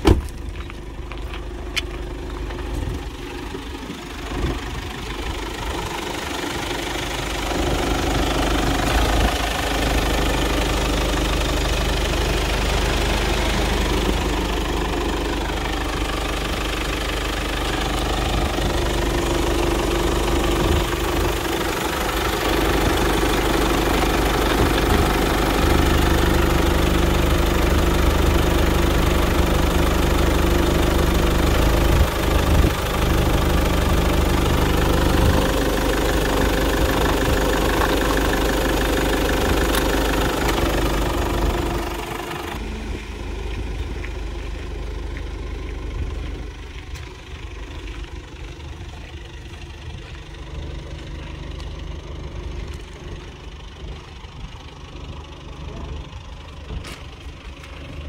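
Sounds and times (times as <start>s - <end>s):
diesel engine idling: 0.0s - 58.0s.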